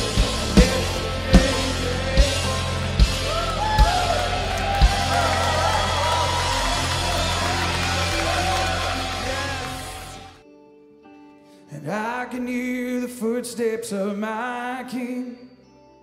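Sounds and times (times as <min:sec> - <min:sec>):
rock band playing: 0:00.0 - 0:10.4.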